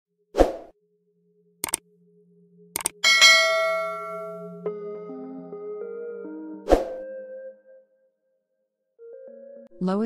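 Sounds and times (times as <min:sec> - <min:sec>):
quick double clicks: 0:01.6 - 0:01.8, 0:02.8 - 0:03.0
bright bell ding: 0:03.0 - 0:04.5.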